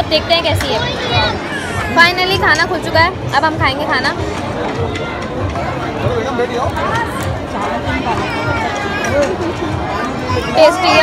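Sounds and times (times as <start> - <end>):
crowd chatter: 0.0 - 11.0
nearer voices talking: 0.0 - 11.0.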